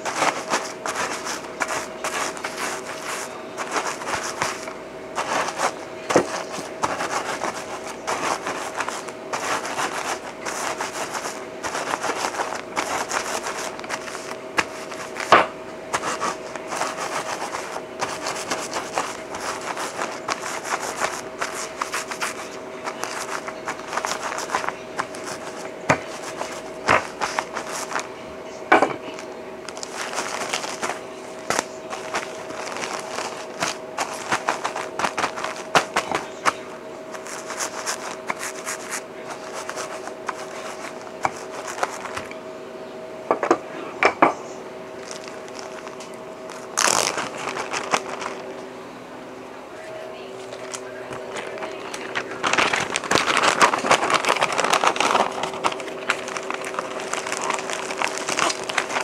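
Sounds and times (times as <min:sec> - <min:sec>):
rolling pin crushing in plastic bag: 0:00.0 - 0:42.4, 0:45.0 - 0:48.6, 0:50.4 - 0:59.0
steady hum: 0:00.0 - 0:59.0.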